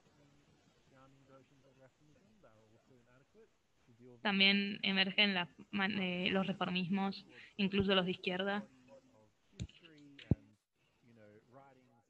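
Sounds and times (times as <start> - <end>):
faint man's voice: 0.0 - 4.3, 8.6 - 12.0.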